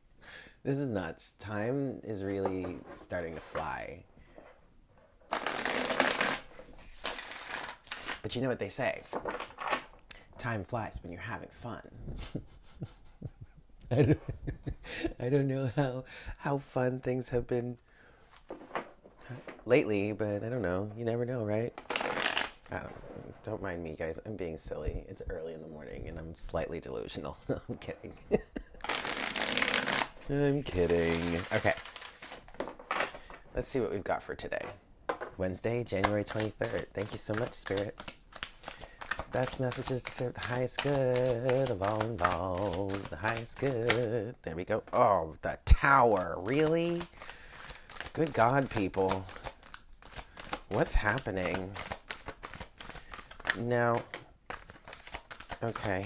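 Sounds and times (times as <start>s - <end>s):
cards riffle-shuffled: 5.3s - 8.2s, 21.8s - 22.7s, 28.8s - 33.4s, 35.8s - 44.2s, 45.8s - 56.0s.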